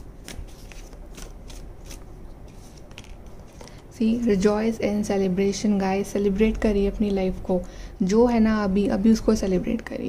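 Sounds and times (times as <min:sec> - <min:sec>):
cards being shuffled: 0:00.0 - 0:03.8.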